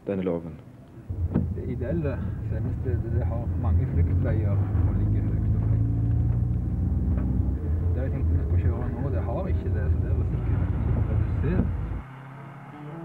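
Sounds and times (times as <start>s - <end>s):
engine and road rumble: 0.6s - 13.0s
indistinct voices: 1.0s - 12.0s.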